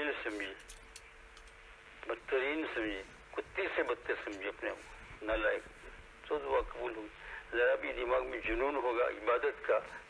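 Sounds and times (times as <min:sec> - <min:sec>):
man giving a sermon: 0:00.0 - 0:00.6, 0:02.0 - 0:10.0.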